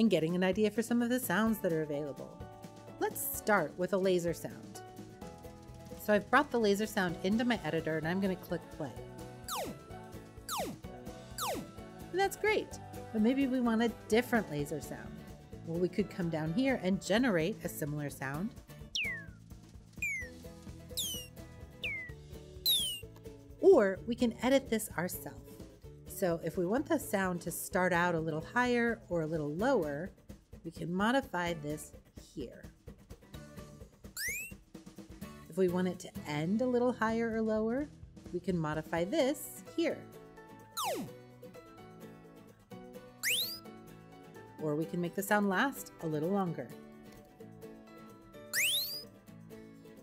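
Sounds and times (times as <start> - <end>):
soft background music: 0.0 - 50.0
synthesized laser zaps: 9.5 - 9.8, 10.5 - 10.8, 40.8 - 41.1.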